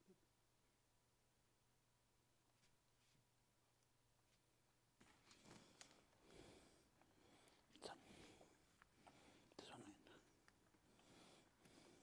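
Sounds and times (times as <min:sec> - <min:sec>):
faint whispered voice: 0:07.7 - 0:08.6, 0:09.5 - 0:10.5.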